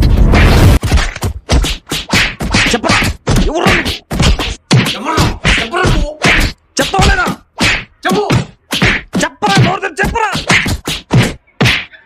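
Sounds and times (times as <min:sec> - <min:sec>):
stick blows on a body: 0:01.5 - 0:12.0.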